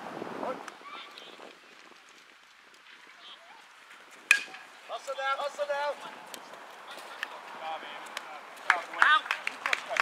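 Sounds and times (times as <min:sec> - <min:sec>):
outdoor field ambience: 0:00.0 - 0:10.0.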